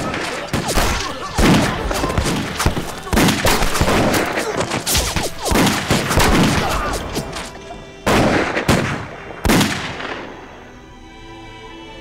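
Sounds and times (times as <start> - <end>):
loud gunfire blasts: 0.0 - 10.3
background music held notes: 4.9 - 12.0.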